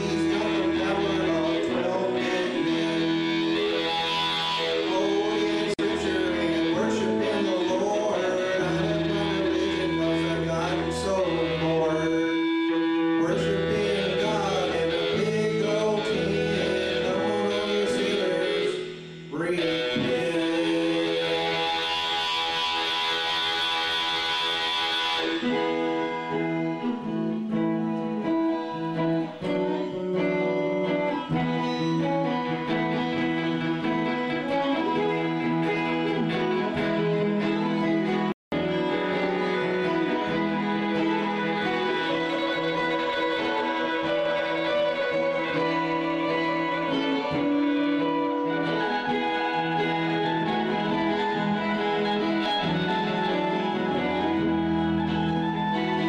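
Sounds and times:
electric guitar through amplifier: 0.0s - 56.0s.

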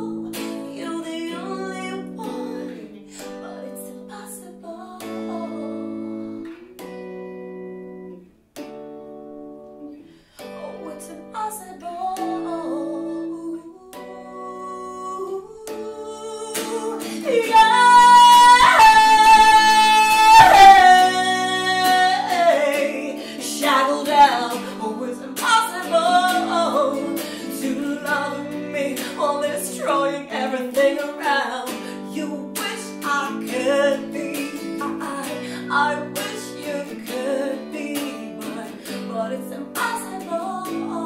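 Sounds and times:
strummed electric guitar chords: 0.0s - 4.2s, 4.8s - 11.3s, 12.1s - 41.0s
woman singing high held note: 10.6s - 37.4s.

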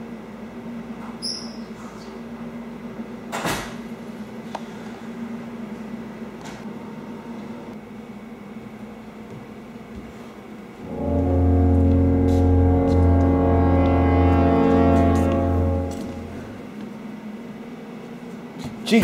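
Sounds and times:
faint hum: 10.8s - 16.9s
loud low horn-like tone: 10.8s - 16.9s.

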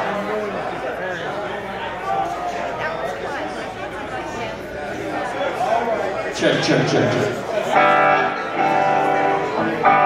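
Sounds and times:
voices in the room: 0.0s - 10.0s
electric guitar chords: 6.5s - 10.0s.

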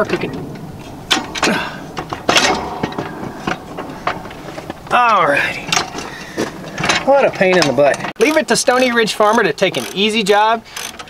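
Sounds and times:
sharp metal knocks and clicks: 0.0s - 11.0s.

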